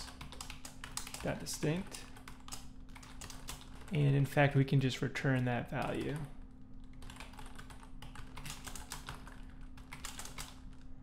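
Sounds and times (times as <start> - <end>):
typing on computer keyboard: 0.0 - 4.0, 5.8 - 10.9
faint steady hum: 0.0 - 11.0.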